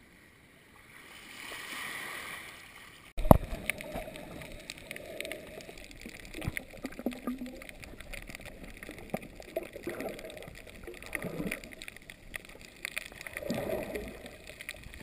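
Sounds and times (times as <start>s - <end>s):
underwater sloshing and bubbling: 0.0s - 15.0s
shallow water washing: 0.9s - 15.0s
underwater clicks: 3.2s - 15.0s.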